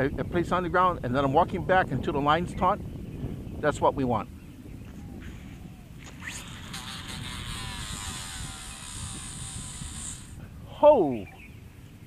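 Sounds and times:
fishing rod swishing: 5.2s - 10.4s
fishing reel spool whining: 6.0s - 10.4s.

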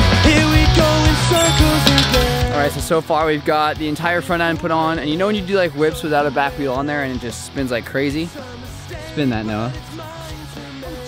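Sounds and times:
background music with bass line: 0.0s - 11.0s
man's voice: 0.0s - 11.0s.

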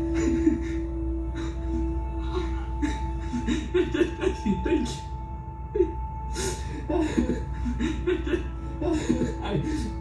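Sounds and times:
film music over loudspeakers: 0.0s - 10.0s
man laughing: 0.1s - 1.5s, 2.8s - 5.1s, 7.0s - 10.0s.

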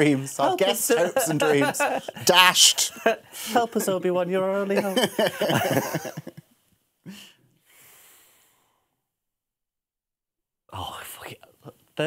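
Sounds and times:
man speaking softly: 10.7s - 12.0s.

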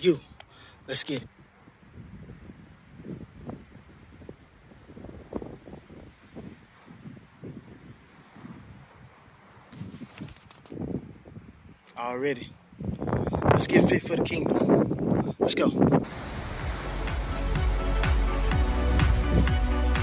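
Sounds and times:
wind or handling rustle on microphone: 0.0s - 16.8s.

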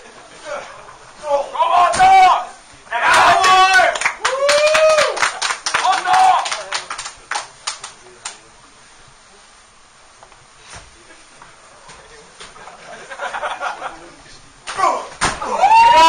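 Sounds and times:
audience shouting: 1.6s - 6.7s, 14.8s - 16.0s
audience clapping: 3.1s - 8.4s.

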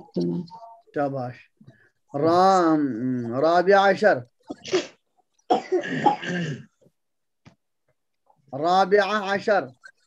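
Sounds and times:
person coughing: 4.6s - 6.8s.

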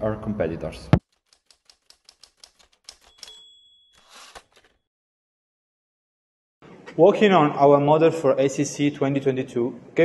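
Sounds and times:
typewriter key clicks: 1.3s - 3.4s.

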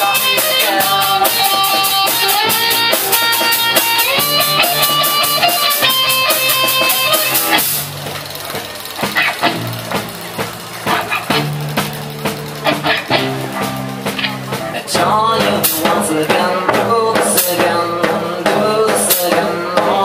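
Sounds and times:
picked guitar notes: 0.0s - 18.6s
cymbals keeping a beat: 0.0s - 20.0s
live rock band playing: 0.0s - 20.0s.

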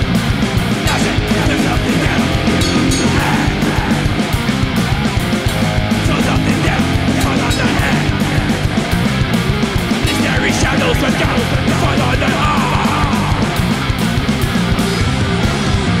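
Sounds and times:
distorted electric guitars: 0.0s - 16.0s
fast drum beat: 0.0s - 16.0s.

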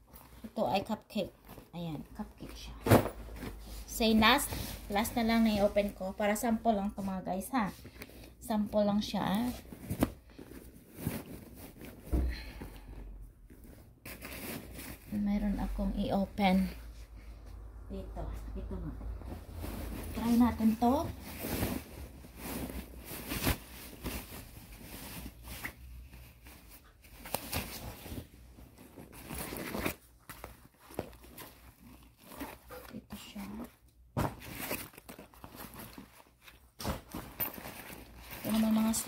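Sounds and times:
bag rustling and scraping: 2.6s - 6.2s, 9.3s - 12.1s, 13.4s - 15.2s, 18.9s - 33.0s, 34.2s - 39.0s.

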